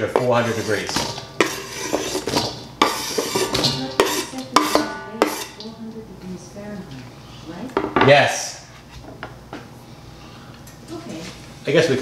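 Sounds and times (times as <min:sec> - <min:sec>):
knife scraping cutting board: 0:00.0 - 0:05.6.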